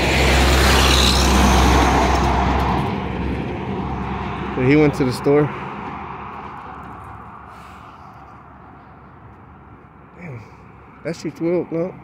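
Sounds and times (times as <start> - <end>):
truck passing: 0.0 - 12.0.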